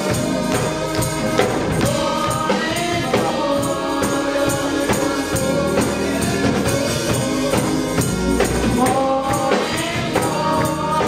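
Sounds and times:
tambourine beat: 0:00.0 - 0:11.0
women singing gospel: 0:00.0 - 0:11.0.

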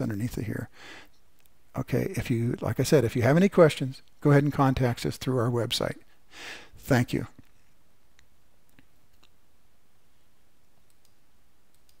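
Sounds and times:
faint background hiss and hum: 0:00.0 - 0:12.0.

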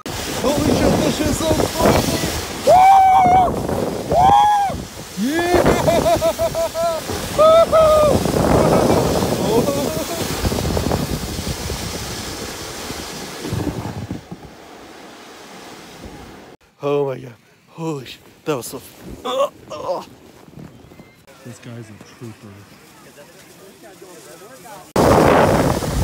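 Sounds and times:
wind on microphone: 0:00.0 - 0:14.6, 0:25.0 - 0:26.0
tube rushing on snow: 0:00.0 - 0:16.6, 0:18.0 - 0:26.0
person yelling and whooping: 0:02.0 - 0:10.2, 0:19.2 - 0:20.1.

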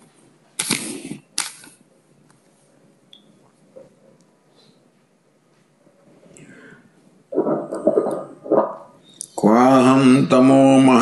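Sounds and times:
sharp click: 0:00.6 - 0:01.8.

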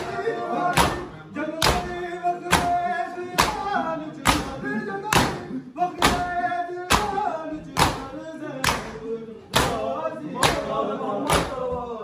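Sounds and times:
men beating chests in unison: 0:00.0 - 0:12.0
men singing a lament: 0:00.0 - 0:12.0.

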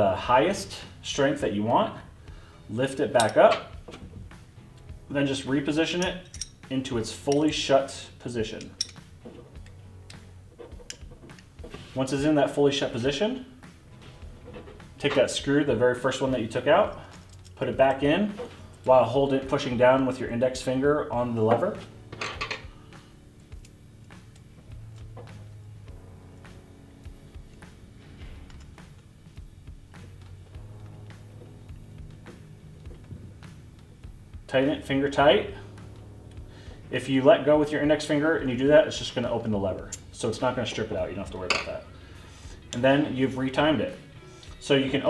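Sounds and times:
soft background music: 0:00.0 - 0:45.0.

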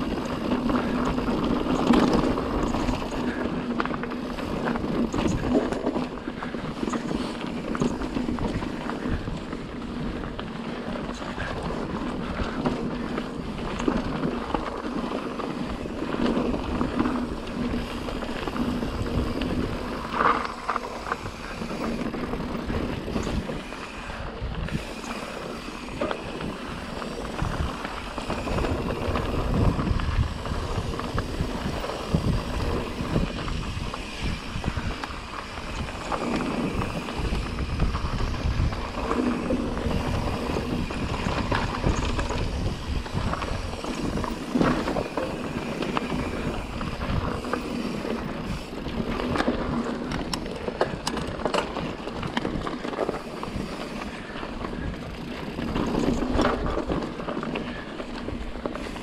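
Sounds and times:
bike rattling over rocks: 0:00.0 - 0:59.0
bike tyres crunching over stones: 0:00.0 - 0:59.0
wind rumble on microphone: 0:00.0 - 0:59.0.

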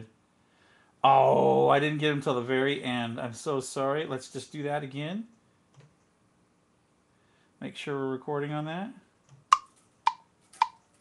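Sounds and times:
metronome clicks: 0:09.3 - 0:10.9.

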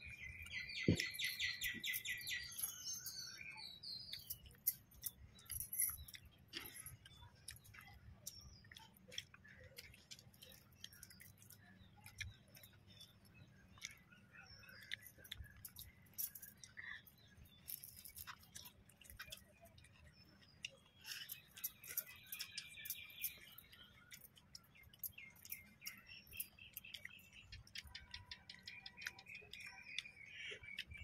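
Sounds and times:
people eating with fingers: 0:00.0 - 0:31.0.

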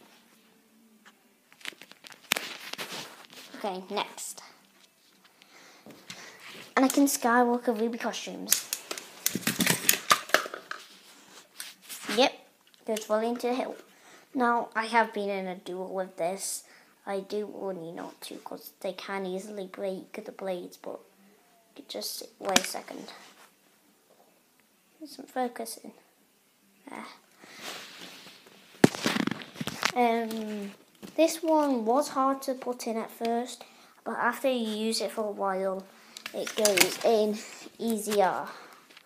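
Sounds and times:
plastic toy rustling: 0:01.5 - 0:05.3, 0:06.0 - 0:13.9, 0:27.5 - 0:31.8, 0:35.6 - 0:39.0
plastic toys clicking and rattling: 0:08.5 - 0:10.8, 0:36.2 - 0:37.2.

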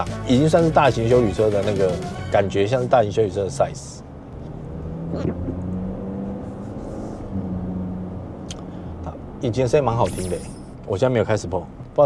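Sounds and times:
car engine hum from inside cabin: 0:02.3 - 0:12.0.

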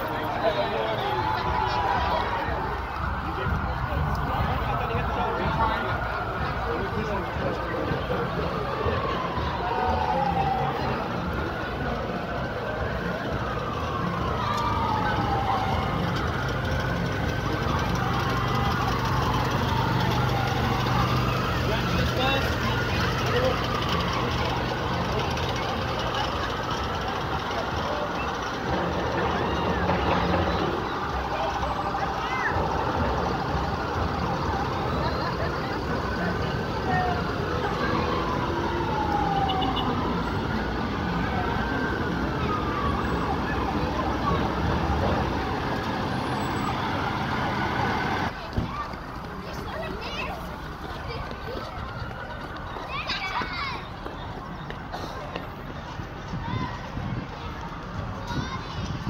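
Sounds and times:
emergency sirens wailing: 0:00.0 - 0:59.0
vehicle engine running low: 0:00.0 - 0:59.0.

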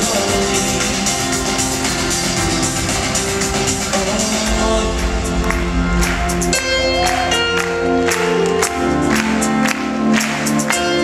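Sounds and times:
sharp percussion hits: 0:00.0 - 0:09.4
live band playing instrumental: 0:00.0 - 0:11.0
piano holding chords: 0:00.0 - 0:11.0.

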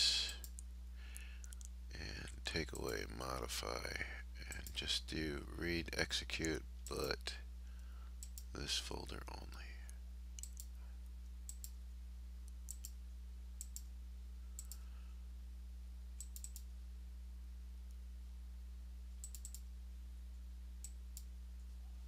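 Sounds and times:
low electrical hum: 0:00.0 - 0:22.0
computer mouse clicks: 0:08.2 - 0:08.5, 0:10.4 - 0:10.7, 0:11.5 - 0:11.8, 0:12.7 - 0:13.0, 0:13.6 - 0:13.9, 0:14.6 - 0:14.8, 0:16.2 - 0:16.7, 0:19.2 - 0:19.7.

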